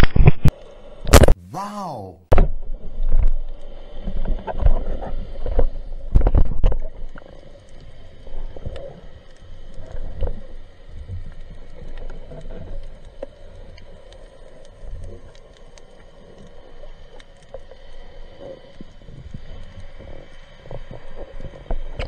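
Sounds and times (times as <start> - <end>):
rumble of water movement: 2.5 - 22.0.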